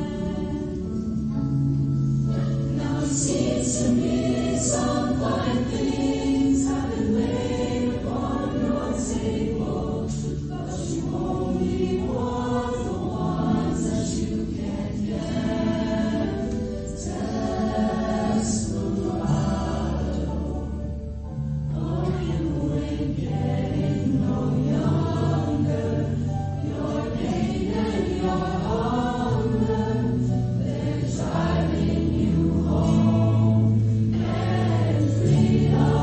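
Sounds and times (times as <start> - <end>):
choir singing in harmony: 0.0 - 36.0.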